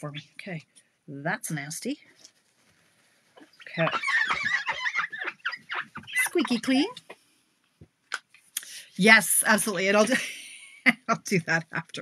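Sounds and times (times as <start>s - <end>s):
wipe squeaking against glass: 3.4s - 7.2s.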